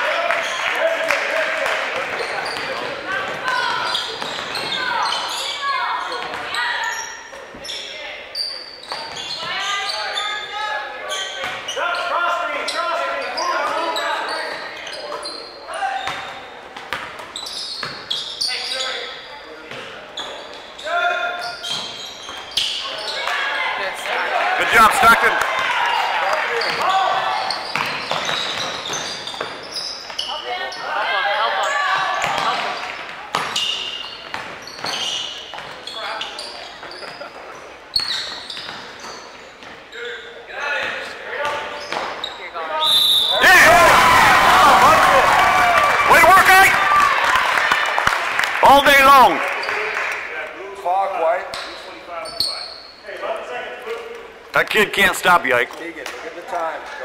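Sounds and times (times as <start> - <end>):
voices and shouts echoing: 0.0 - 16.6, 18.1 - 29.1, 30.2 - 33.9, 39.9 - 57.0
short whistle: 42.8 - 43.4.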